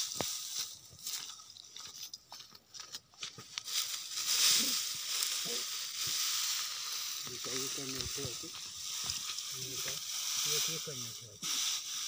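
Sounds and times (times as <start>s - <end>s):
dry straw rustling: 0.0s - 12.0s.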